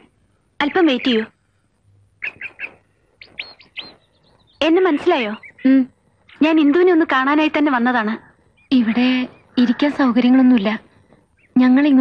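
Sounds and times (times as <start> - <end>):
bird chirping: 2.1 - 12.0.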